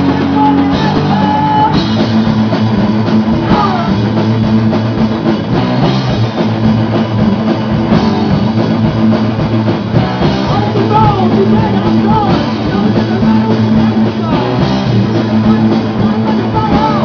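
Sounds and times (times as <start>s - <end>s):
heavy metal band playing live: 0.0s - 17.0s.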